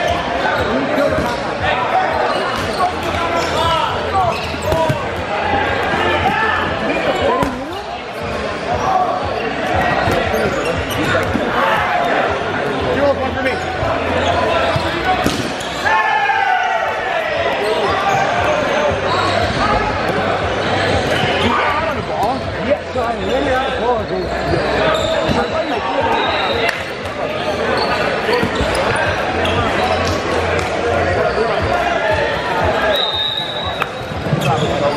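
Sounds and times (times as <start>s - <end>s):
players shouting: 0.0s - 22.0s.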